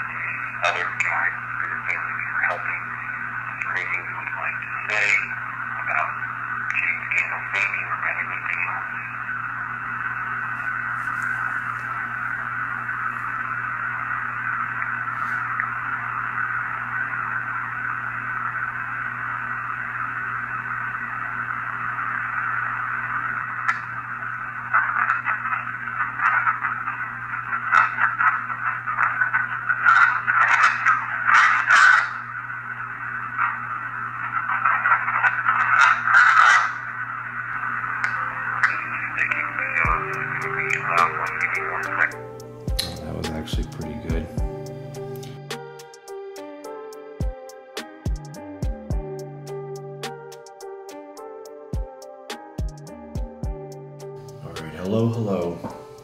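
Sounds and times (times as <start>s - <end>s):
low steady hum: 0.0s - 46.6s, 52.7s - 56.0s
radio static hiss: 0.0s - 56.0s.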